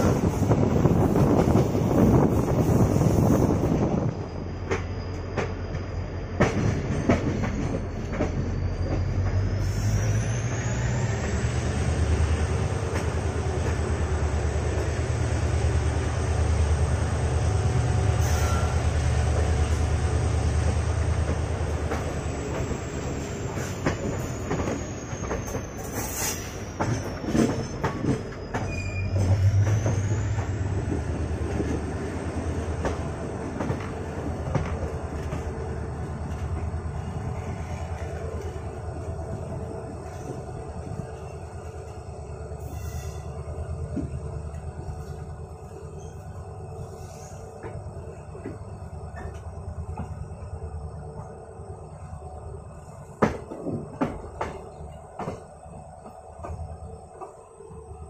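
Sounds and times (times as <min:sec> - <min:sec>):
train wheel and rail rumble: 0:00.0 - 0:58.0
high wheel squeal: 0:07.0 - 0:11.6, 0:18.0 - 0:19.0, 0:22.2 - 0:30.8, 0:42.6 - 0:43.4.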